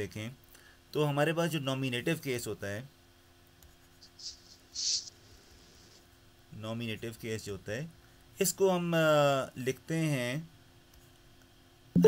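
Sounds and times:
stylus scratching on tablet: 3.7s - 6.0s.

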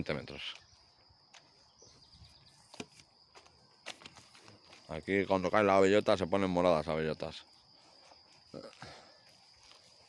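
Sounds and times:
footsteps on paved path: 0.4s - 5.4s, 7.6s - 10.0s.

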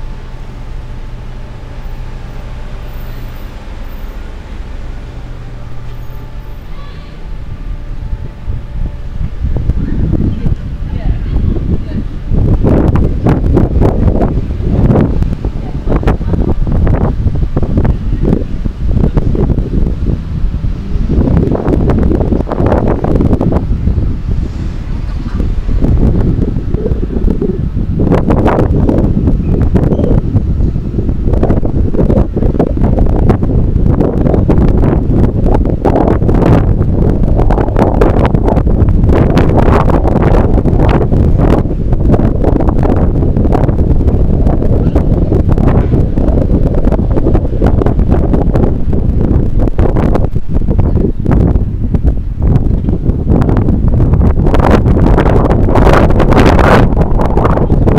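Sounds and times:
wind buffeting microphone: 0.0s - 57.9s.

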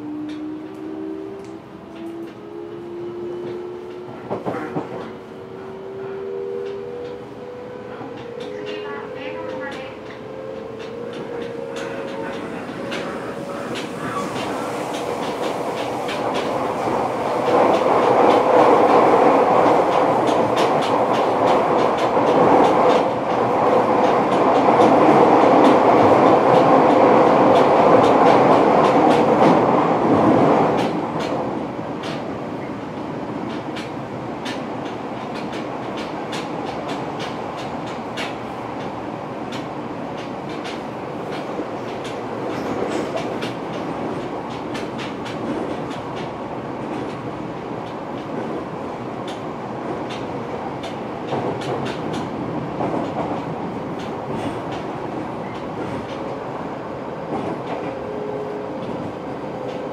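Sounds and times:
train running noise inside car: 0.0s - 59.9s
wheels clicking over rail joints: 33.4s - 56.3s.

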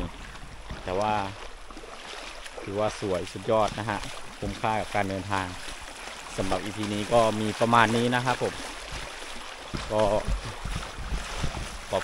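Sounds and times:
wind buffeting microphone: 0.0s - 1.4s, 2.6s - 12.0s
stream running over rocks: 0.0s - 12.0s.

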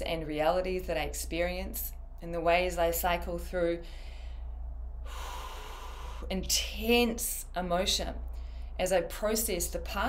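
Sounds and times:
woman inhaling through mouth: 3.9s - 6.3s.

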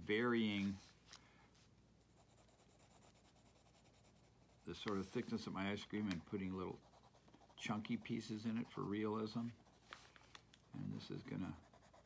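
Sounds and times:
pencil scratching on paper: 2.0s - 10.0s, 10.6s - 12.0s.

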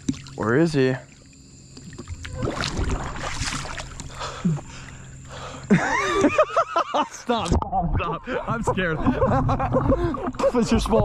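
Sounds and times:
water splashing and sloshing: 0.0s - 5.1s, 8.8s - 11.0s
low rumble: 7.5s - 11.0s.

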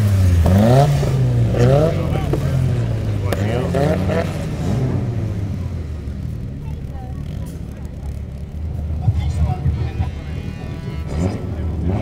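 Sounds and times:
car engines idling: 0.0s - 12.0s
faint public-address commentary: 1.3s - 12.0s.

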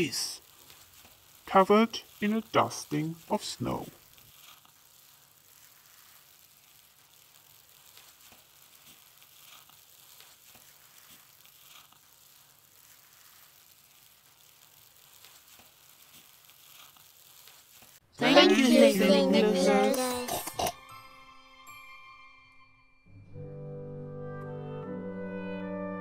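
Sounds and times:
soft crackles: 0.0s - 18.0s
faint hiss: 0.0s - 20.1s.

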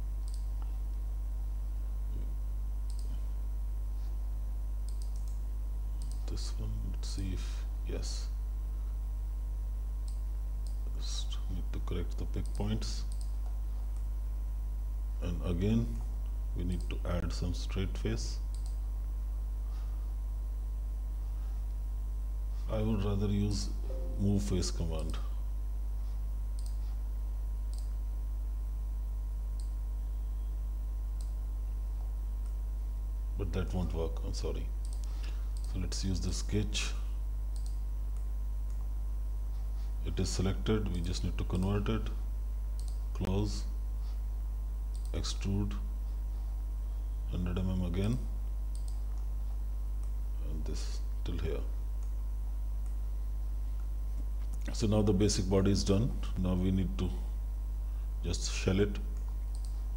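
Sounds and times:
steady low hum: 0.0s - 59.9s
computer mouse clicks: 0.2s - 0.7s, 2.9s - 3.2s, 4.8s - 5.4s, 6.0s - 6.3s, 12.4s - 14.1s, 18.5s - 18.8s, 26.6s - 26.8s, 27.7s - 28.0s, 29.6s - 29.8s, 34.8s - 35.7s, 37.5s - 38.9s, 42.8s - 43.0s, 48.7s - 49.3s, 59.2s - 59.8s.

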